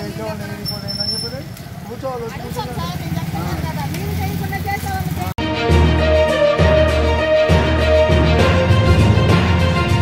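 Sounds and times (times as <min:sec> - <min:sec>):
voices talking: 0:00.0 - 0:05.4
road traffic rumble: 0:00.0 - 0:10.0.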